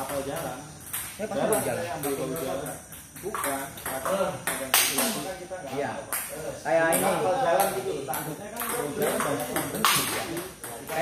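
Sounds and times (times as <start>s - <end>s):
table tennis ball clicking off paddles: 0.0s - 5.2s, 6.0s - 11.0s.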